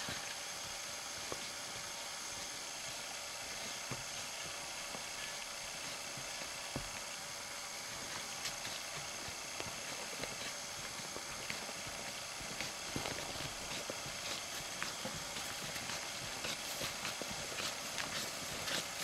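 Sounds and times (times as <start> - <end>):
background hiss: 0.0 - 19.0.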